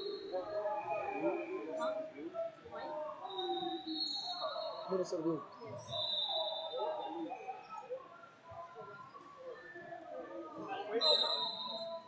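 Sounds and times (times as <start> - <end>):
distant chatter echoing in hall: 0.0 - 12.0.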